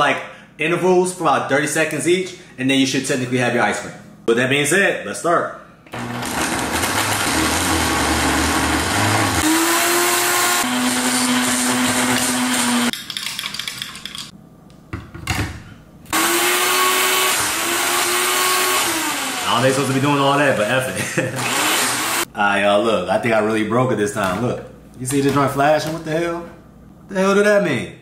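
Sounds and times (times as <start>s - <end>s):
blender crushing ice: 6.0s - 12.9s, 16.1s - 20.6s, 21.4s - 22.3s.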